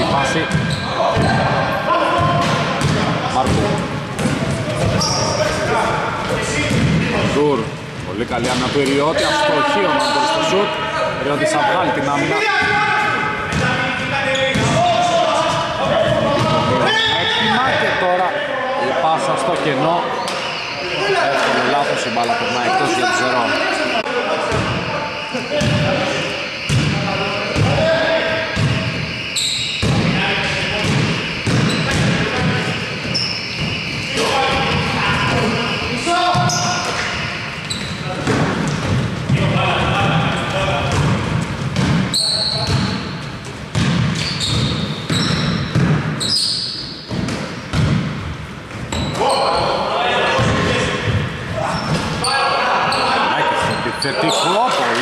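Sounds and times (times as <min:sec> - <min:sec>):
sneakers squeaking: 0:00.0 - 0:18.0, 0:19.4 - 0:55.0
players calling out: 0:00.0 - 0:47.2, 0:48.9 - 0:55.0
basketball bouncing on wooden floor: 0:40.9 - 0:42.8, 0:43.7 - 0:46.1, 0:47.1 - 0:48.3.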